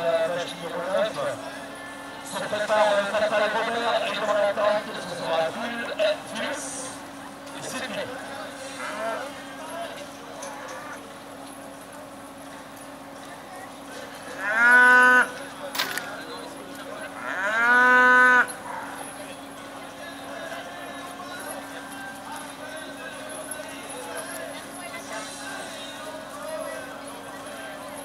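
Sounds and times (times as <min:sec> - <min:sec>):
cattle mooing: 0:08.8 - 0:09.3, 0:14.3 - 0:15.4, 0:17.2 - 0:18.9.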